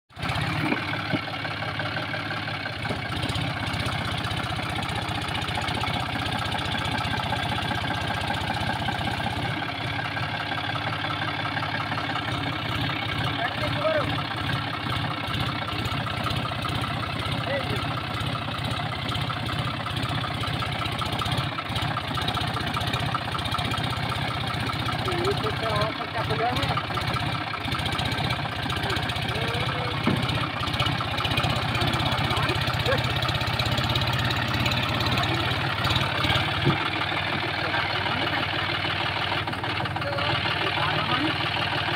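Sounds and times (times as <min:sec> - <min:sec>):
tractor diesel engine under load: 0:00.1 - 0:41.9.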